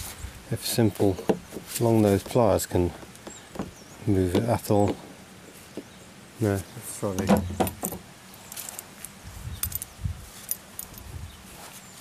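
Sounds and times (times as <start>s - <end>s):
clicks and rustles of handling tools: 7.1s - 11.8s.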